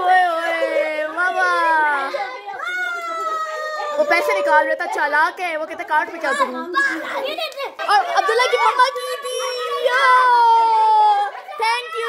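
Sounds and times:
young children talking and playing: 0:00.0 - 0:12.0.

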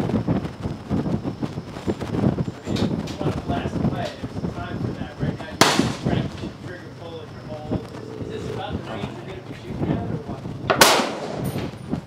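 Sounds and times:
wind rumble on microphone: 0:00.0 - 0:12.0
faint voices: 0:02.5 - 0:10.7
rifle shot: 0:05.6 - 0:06.1, 0:10.7 - 0:11.4.

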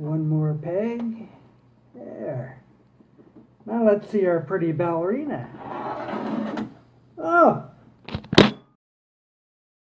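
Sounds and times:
short vocal exclamation: 0:07.2 - 0:07.8.

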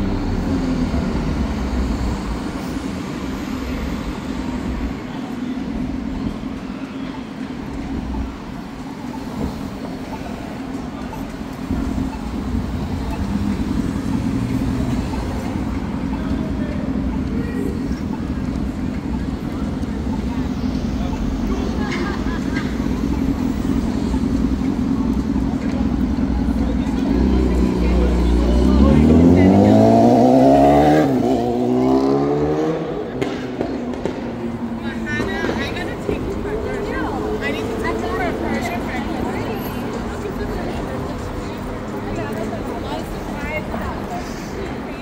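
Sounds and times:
vehicle accelerating away: 0:00.0 - 0:04.3, 0:23.7 - 0:34.8
street traffic rumble: 0:00.0 - 0:45.0.

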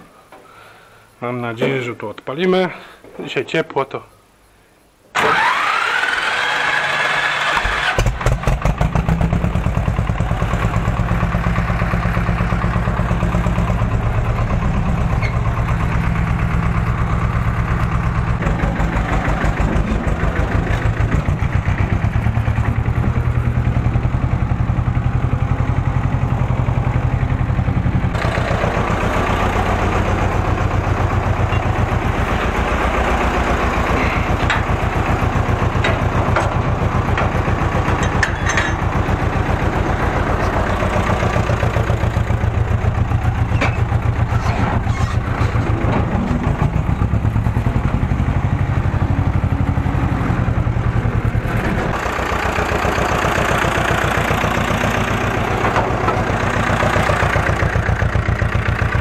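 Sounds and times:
starter motor whining: 0:05.2 - 0:08.4
diesel engine running: 0:05.2 - 0:59.0.

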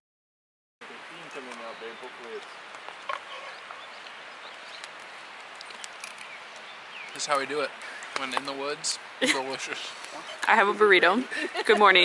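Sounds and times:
outdoor hiss: 0:00.8 - 0:12.0
faint bird chirps: 0:01.2 - 0:07.4.

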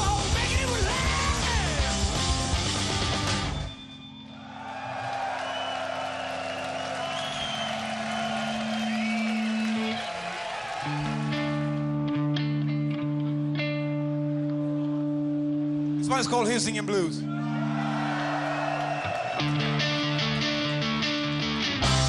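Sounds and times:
live rock band playing: 0:00.0 - 0:03.9, 0:19.4 - 0:22.0
crowd cheering: 0:04.1 - 0:12.0, 0:17.2 - 0:21.0
ringing electric guitar notes: 0:10.9 - 0:16.0, 0:19.4 - 0:22.0.

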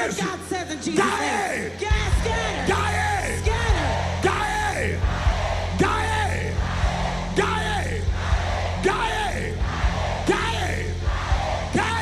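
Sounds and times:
man shouting into microphone: 0:00.0 - 0:05.0, 0:11.7 - 0:12.0
keyboard chords: 0:01.7 - 0:12.0
steady low drone: 0:01.9 - 0:12.0.

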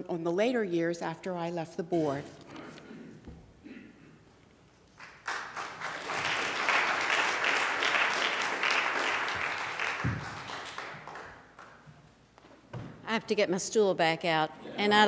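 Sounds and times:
audience applauding: 0:05.0 - 0:11.8.

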